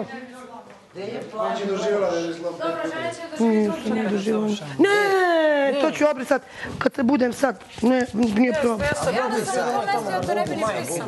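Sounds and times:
people talking over one another: 0:02.5 - 0:11.0.

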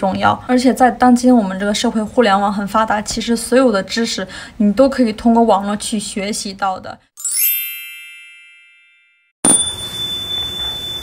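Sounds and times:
bright chime: 0:07.2 - 0:11.0.

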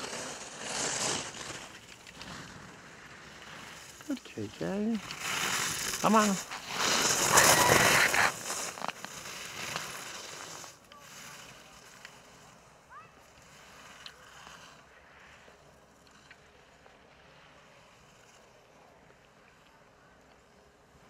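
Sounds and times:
skis scraping across snow: 0:00.0 - 0:21.0.

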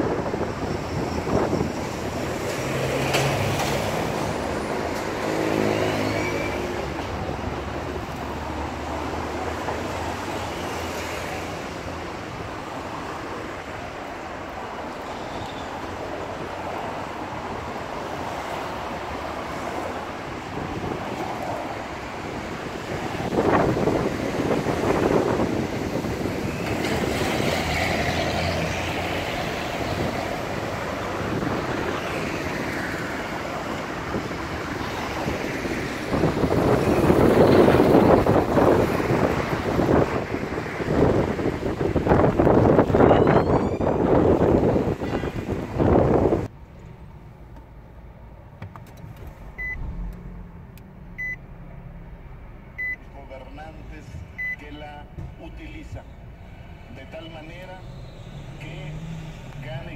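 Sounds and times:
street traffic: 0:00.0 - 0:59.9
wind buffeting microphone: 0:20.4 - 0:27.5, 0:33.2 - 0:46.5
car dashboard chime beeping: 0:49.6 - 0:49.9, 0:51.2 - 0:51.4, 0:52.8 - 0:53.1, 0:54.4 - 0:54.7.

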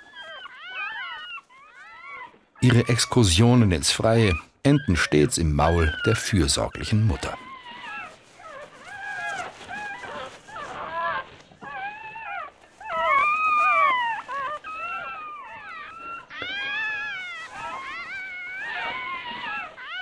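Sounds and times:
fox cubs whimpering and squealing: 0:00.0 - 0:20.0.

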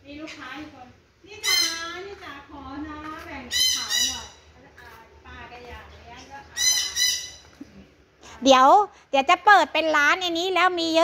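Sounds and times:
bird high-pitched calls: 0:01.4 - 0:02.0, 0:03.5 - 0:04.5, 0:06.5 - 0:07.6.

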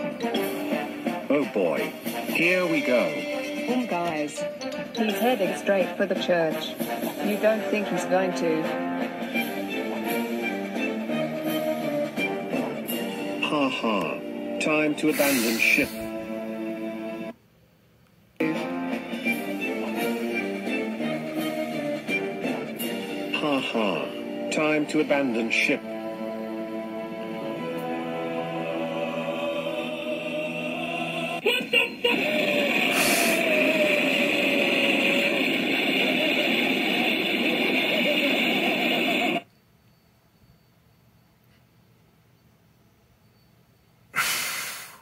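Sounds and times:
explosion roar through speakers: 0:32.2 - 0:39.4.

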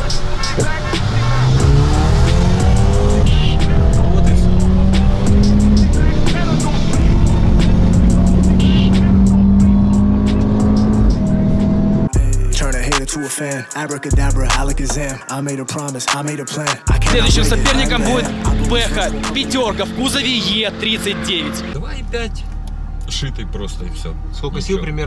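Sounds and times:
car engine at full throttle: 0:00.0 - 0:12.1, 0:16.9 - 0:25.0
background music with steady beat: 0:00.0 - 0:21.8.

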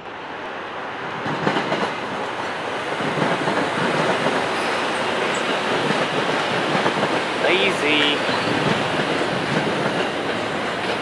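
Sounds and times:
train wheels on rail: 0:00.0 - 0:11.0.

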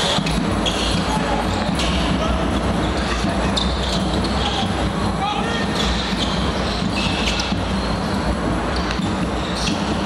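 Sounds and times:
crowd voices: 0:00.0 - 0:10.0
shoes squeaking: 0:00.0 - 0:10.0.

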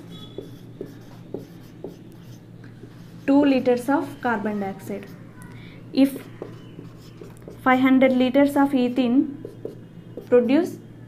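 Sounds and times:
marker pen writing on whiteboard: 0:00.0 - 0:03.8, 0:06.0 - 0:08.2, 0:09.4 - 0:10.6.

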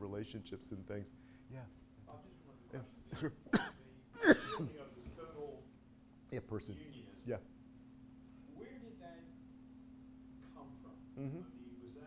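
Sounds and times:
faint room hum: 0:00.0 - 0:12.0
person coughing: 0:03.2 - 0:04.7
quiet speech: 0:10.4 - 0:12.0.

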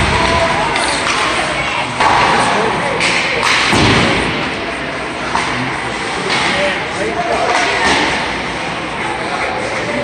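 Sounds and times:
dull echoing thuds: 0:03.6 - 0:04.6.

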